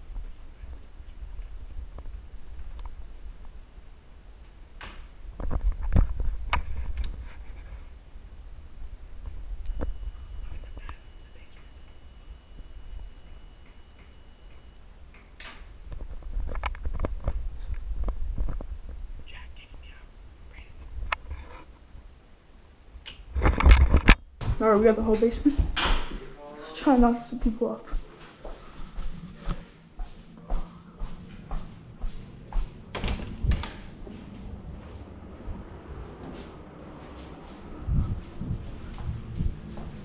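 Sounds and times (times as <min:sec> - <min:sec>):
footsteps in a house: 0:24.4 - 0:40.0
microphone handling rumble: 0:37.8 - 0:40.0.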